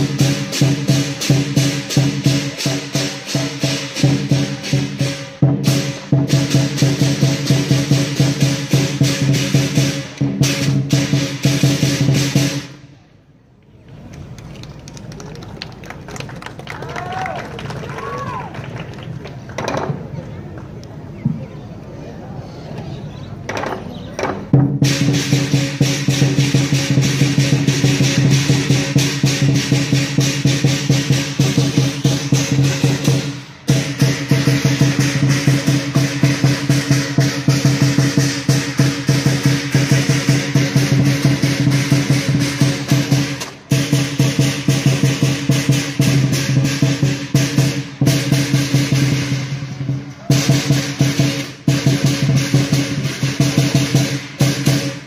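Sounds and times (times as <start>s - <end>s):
large drum fast beat: 0.0s - 12.8s, 24.5s - 55.0s.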